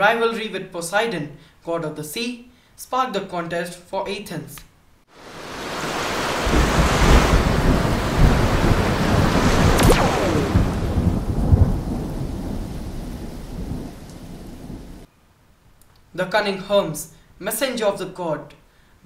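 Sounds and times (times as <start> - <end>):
steady rain: 5.1 - 15.1
rumbling thunder: 6.2 - 15.1
sharp thunder crack: 6.3 - 15.1.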